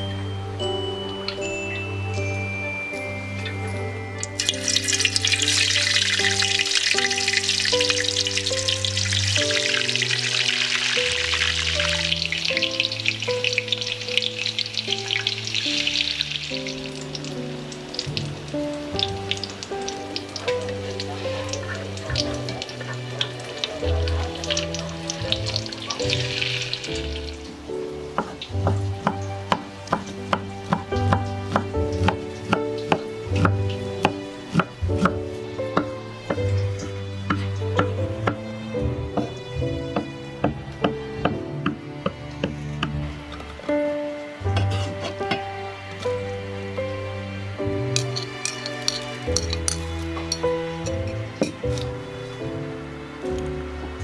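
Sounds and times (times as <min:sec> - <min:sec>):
soft background music: 0:00.0 - 0:54.0
tofu sizzling in hot oil: 0:04.3 - 0:38.6
knife chopping on cutting board: 0:28.2 - 0:35.2.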